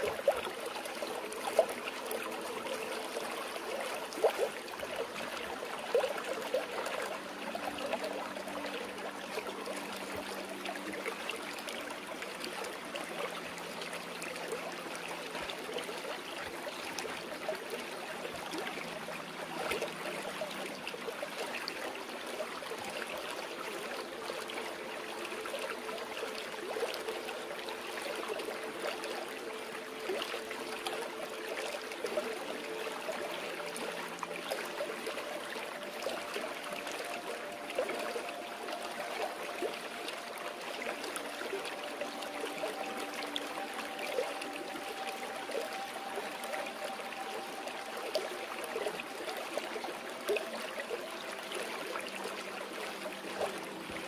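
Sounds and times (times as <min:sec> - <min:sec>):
small water splashes: 0:00.0 - 0:54.0
stream water flowing over rocks: 0:00.0 - 0:54.0.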